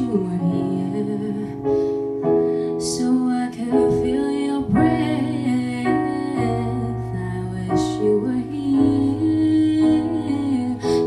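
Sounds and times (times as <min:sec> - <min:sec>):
digital piano chords: 0:00.0 - 0:11.0
woman singing slow song: 0:00.0 - 0:11.0.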